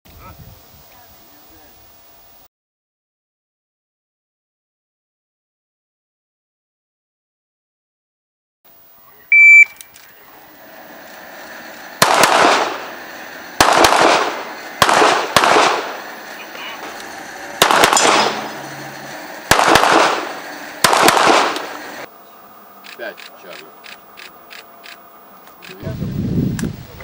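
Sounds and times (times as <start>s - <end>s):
short high electronic beep: 9.3s - 9.8s
pistol shots with echo: 12.0s - 22.1s.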